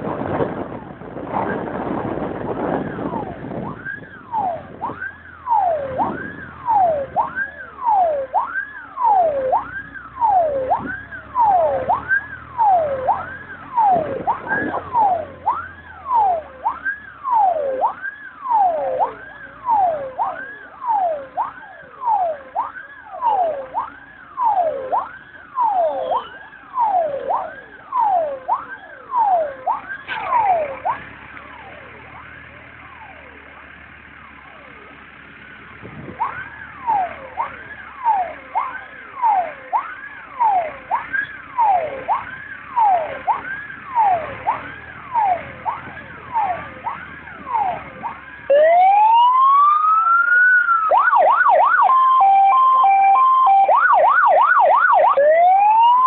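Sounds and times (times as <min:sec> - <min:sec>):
fire engine sirens wailing: 0:00.0 - 0:56.0
low car hum: 0:00.0 - 0:56.0.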